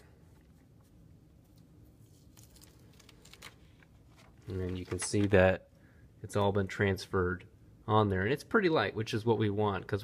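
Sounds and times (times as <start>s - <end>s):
paper rustling as tape peeled: 1.5s - 5.4s.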